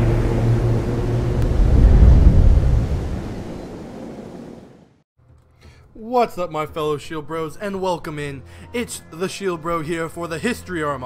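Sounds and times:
deep rumbling drone: 0.0s - 4.4s.

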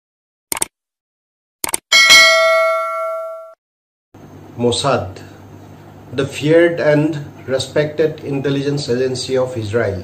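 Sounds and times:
bell chime ringing: 1.9s - 3.6s.

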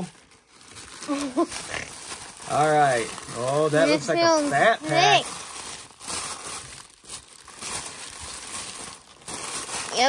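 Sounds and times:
tissue paper crinkling: 0.0s - 10.0s.

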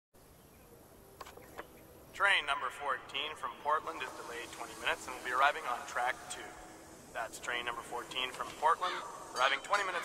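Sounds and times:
faint background hiss: 0.2s - 10.0s.

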